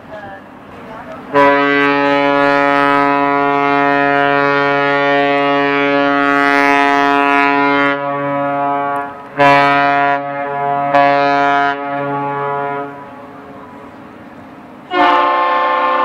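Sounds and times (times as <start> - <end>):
boat horn blasts: 1.3 - 13.8, 14.8 - 16.0.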